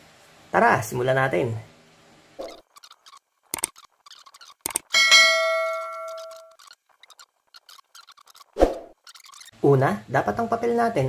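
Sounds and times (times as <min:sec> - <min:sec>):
quick clicks: 0:02.4 - 0:04.9
bright bell ding: 0:04.9 - 0:06.5.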